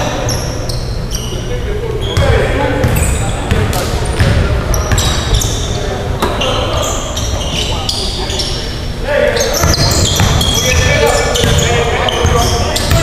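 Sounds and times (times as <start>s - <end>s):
sneakers squeaking on hardwood: 0.0s - 13.0s
basketball dribbling: 9.6s - 13.0s.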